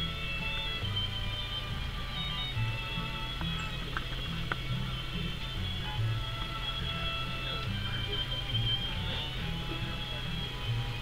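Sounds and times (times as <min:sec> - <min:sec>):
instrumental song with bass line: 0:00.0 - 0:11.0.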